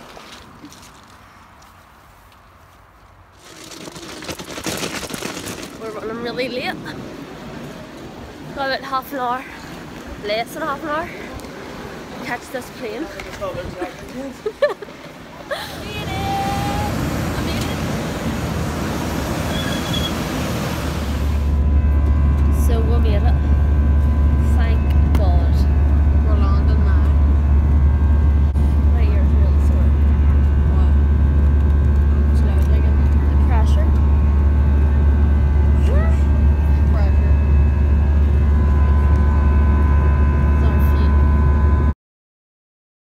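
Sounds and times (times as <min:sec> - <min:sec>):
wind: 0:00.0 - 0:42.0
airport noise: 0:05.3 - 0:41.9
jet cabin drone: 0:15.8 - 0:42.0.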